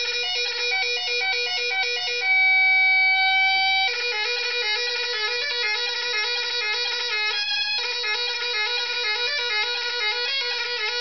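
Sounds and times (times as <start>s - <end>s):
bagpipes playing: 0.0s - 11.0s.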